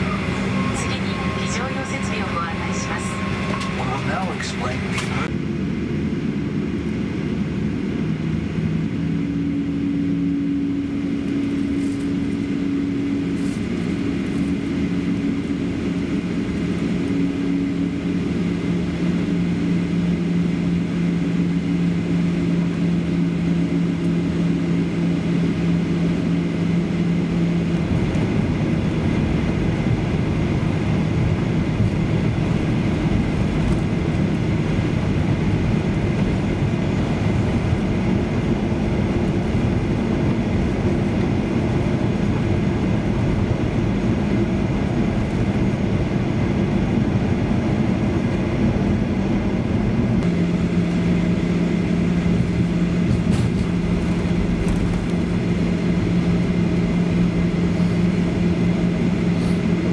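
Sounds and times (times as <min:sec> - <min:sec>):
rumble of engines and airflow: 0:00.0 - 0:59.9.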